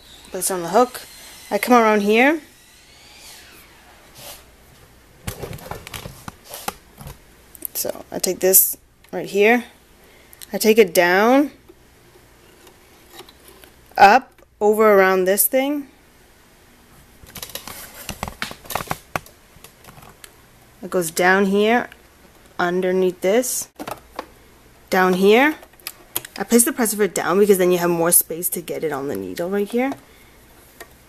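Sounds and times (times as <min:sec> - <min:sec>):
faint hiss: 0:00.0 - 0:05.0.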